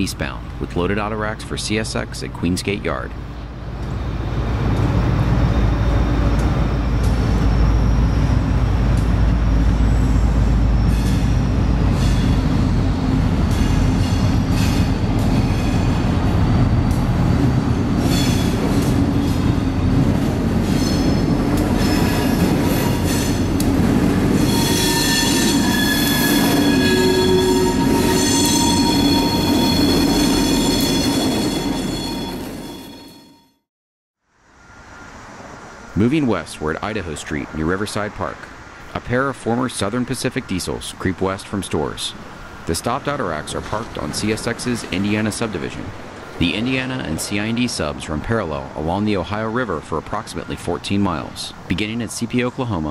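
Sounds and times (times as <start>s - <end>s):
diesel locomotives rumbling: 0.0s - 33.3s, 34.6s - 52.9s
wheel flanges squealing: 4.9s - 33.4s.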